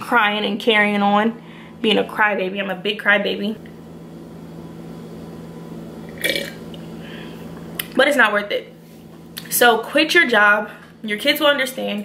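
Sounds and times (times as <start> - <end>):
steady low hum: 0.0 - 12.0
person swallowing: 6.1 - 6.8.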